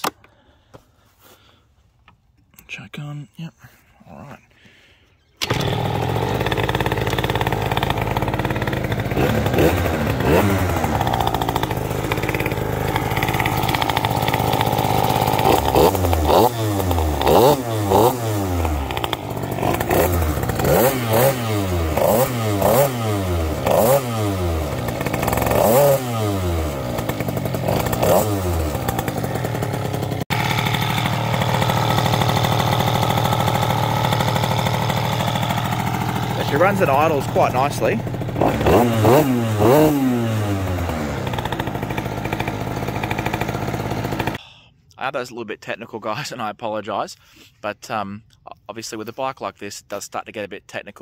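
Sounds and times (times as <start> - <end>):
scooter engine idling: 5.4 - 44.4
scooter engine revving: 5.4 - 44.4.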